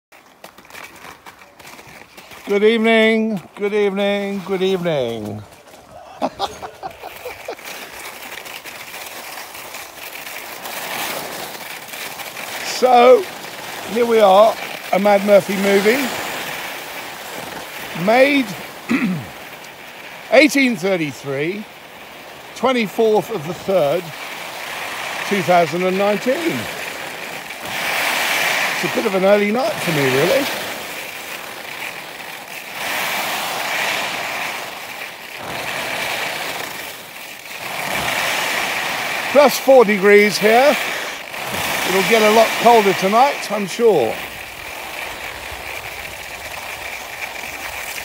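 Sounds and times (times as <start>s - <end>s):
skis sliding on snow: 0.1s - 48.0s.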